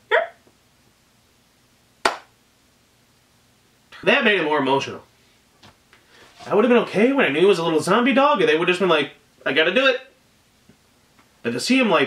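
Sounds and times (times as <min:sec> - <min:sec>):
sharp hand clap: 0:02.0 - 0:02.3.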